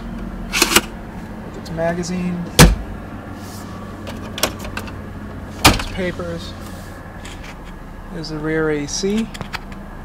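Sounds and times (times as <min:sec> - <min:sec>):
car engine idling hum: 0:00.0 - 0:10.0
console compartment clicks and knocks: 0:02.5 - 0:02.8.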